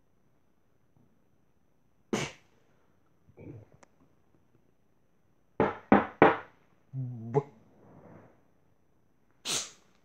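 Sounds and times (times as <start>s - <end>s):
sharp knocks: 5.6s - 6.5s
short vocal sound: 6.9s - 7.6s.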